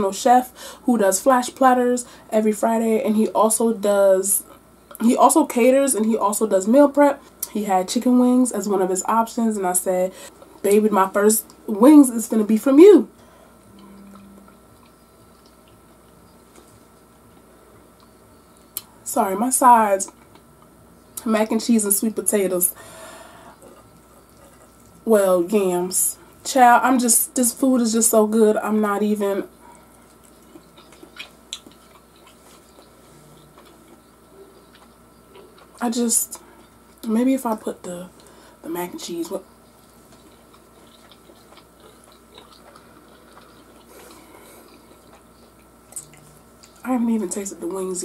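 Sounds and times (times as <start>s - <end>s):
wet chewing of food: 13.3s - 18.9s, 20.0s - 20.9s, 22.8s - 25.1s, 29.5s - 37.1s, 39.2s - 46.9s.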